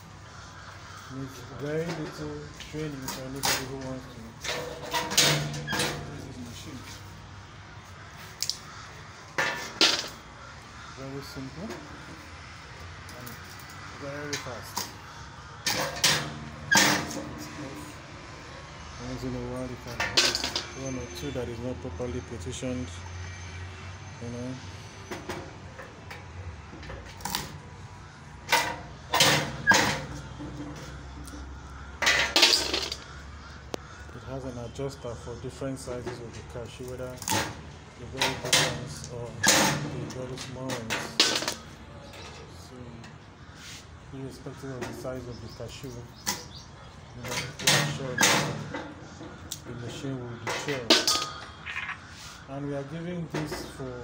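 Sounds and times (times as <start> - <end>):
metallic clacks of deshelling machine: 3.0 - 6.2, 15.6 - 17.8, 19.8 - 20.8, 28.4 - 30.9, 37.2 - 41.6, 47.2 - 52.0.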